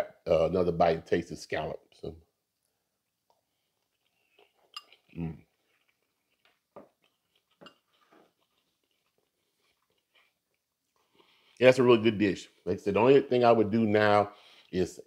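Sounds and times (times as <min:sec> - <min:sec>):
quiet chewing: 0:02.5 - 0:11.6.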